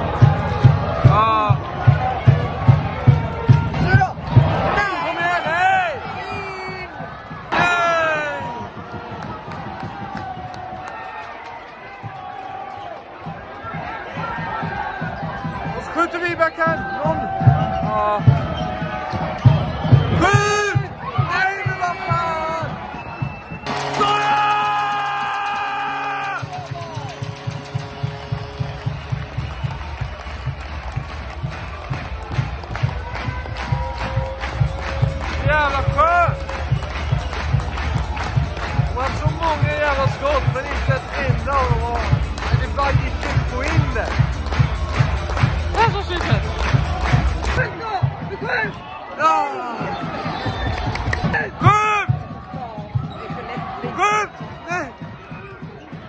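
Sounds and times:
music with thumping beat: 0.0s - 4.7s, 16.7s - 48.8s
loud held chord: 23.7s - 29.2s.

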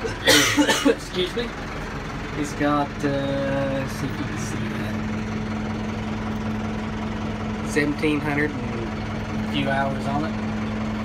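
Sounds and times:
tractor diesel engine idling: 0.0s - 11.0s.

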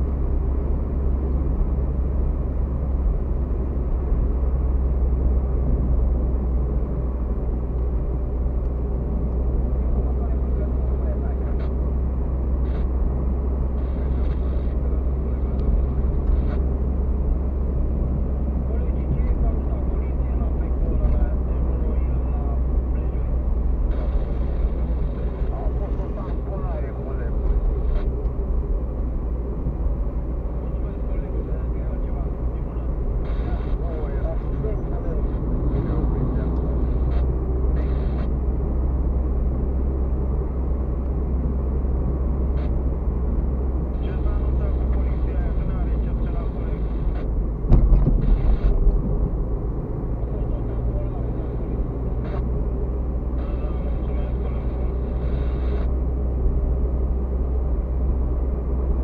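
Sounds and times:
car engine and tyre rumble: 0.0s - 59.0s
loud thump: 47.7s - 48.4s.

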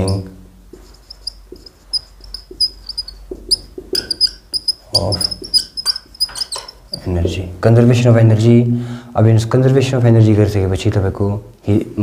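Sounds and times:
marker squeaking on whiteboard: 0.0s - 7.0s.

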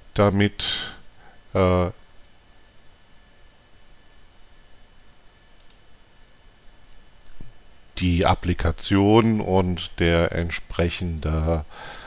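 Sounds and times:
room hiss: 0.0s - 12.0s
computer mouse click: 5.6s - 5.9s.

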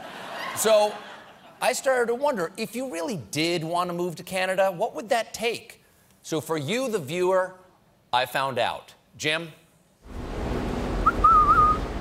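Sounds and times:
low traffic rumble: 10.0s - 12.0s
person whistling: 11.0s - 11.8s.

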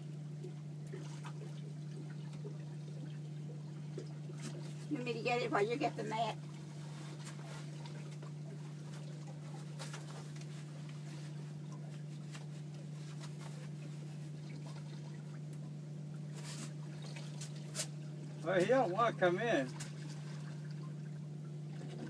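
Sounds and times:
outboard motor idling: 0.0s - 22.0s.

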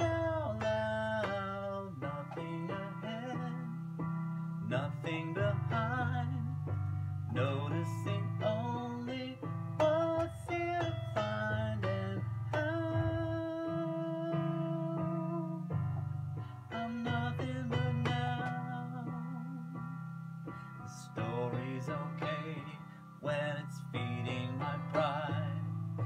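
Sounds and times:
acoustic guitar chords strummed: 0.0s - 19.5s.

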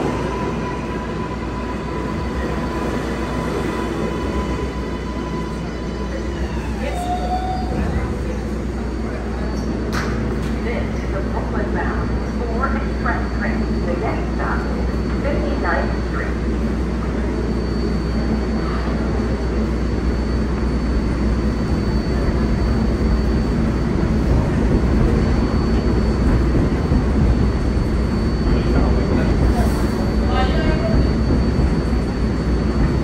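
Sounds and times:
passengers' voices: 0.0s - 33.0s
subway train humming and rumbling: 0.0s - 33.0s.

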